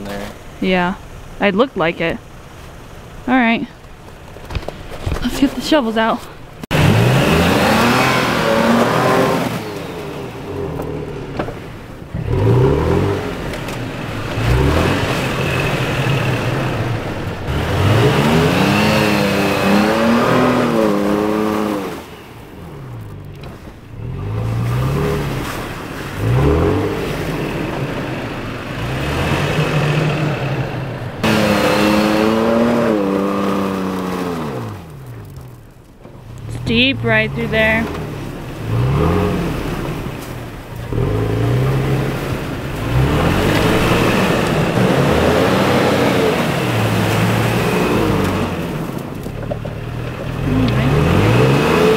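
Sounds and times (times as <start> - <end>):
truck engine revving: 0.0 - 51.9
tyres spinning in slush: 0.0 - 51.9.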